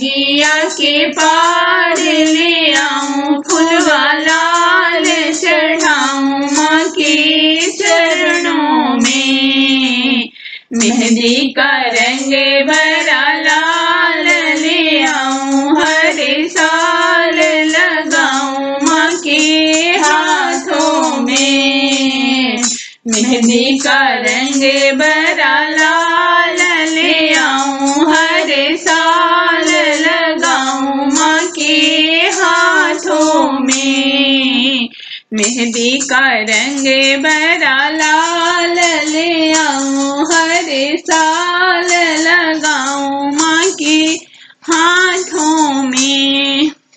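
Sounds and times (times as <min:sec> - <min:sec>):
woman singing folk song: 0:00.0 - 0:46.9.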